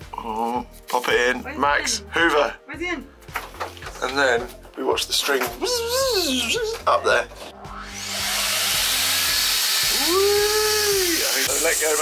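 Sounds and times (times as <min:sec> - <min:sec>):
gliding tone: 0:07.3 - 0:09.6
vacuum cleaner rushing hiss: 0:08.0 - 0:12.0.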